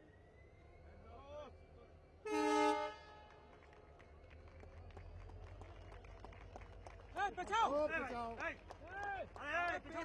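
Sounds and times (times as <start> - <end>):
train horn: 2.2 - 3.5.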